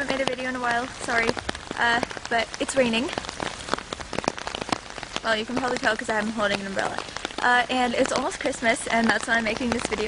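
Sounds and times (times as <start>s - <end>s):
raindrops ticking on umbrella: 0.0s - 10.0s
steady rain hiss: 0.0s - 10.0s.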